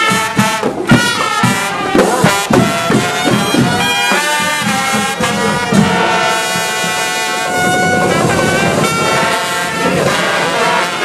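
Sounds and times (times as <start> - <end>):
brass chords: 0.0 - 11.0
marching drums: 0.0 - 11.0.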